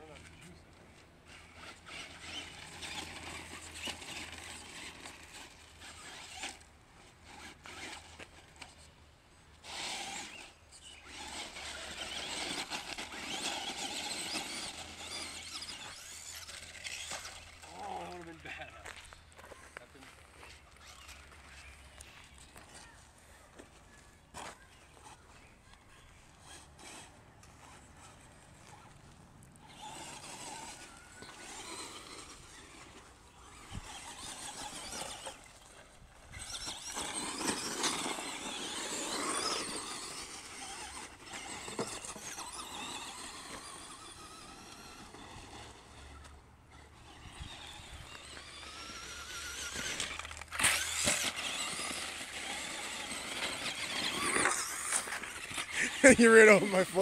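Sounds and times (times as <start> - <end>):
electric motor and gears whining: 0.0 - 23.0, 23.6 - 57.0.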